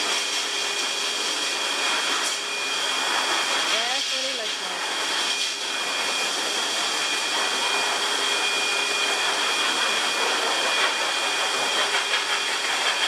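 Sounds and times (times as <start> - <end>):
pet dryer blowing air: 0.0 - 13.0.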